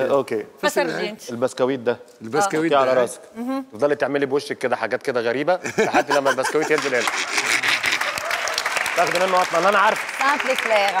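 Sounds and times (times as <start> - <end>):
audience applauding: 6.6 - 11.0.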